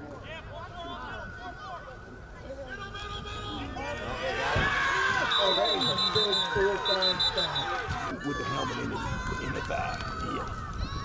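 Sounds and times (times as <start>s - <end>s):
spectators shouting and cheering: 2.9s - 11.0s
referee whistle trilling blasts: 5.2s - 7.8s.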